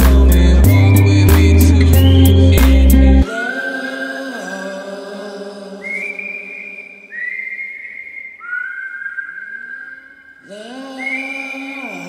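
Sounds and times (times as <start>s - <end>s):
whistled melody: 0.0s - 4.5s, 5.8s - 12.0s.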